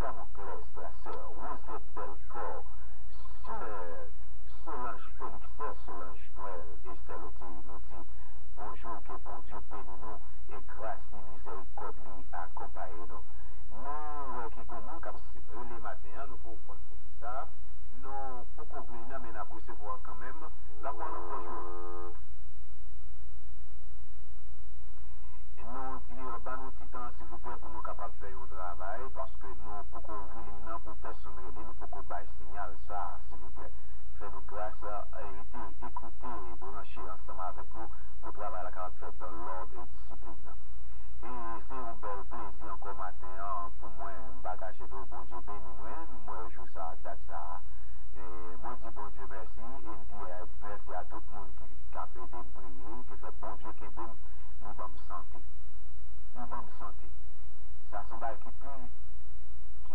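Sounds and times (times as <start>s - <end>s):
person speaking on radio: 0.0s - 22.2s, 25.1s - 55.5s, 56.3s - 57.2s, 57.9s - 58.9s
steady low hum: 0.0s - 59.9s.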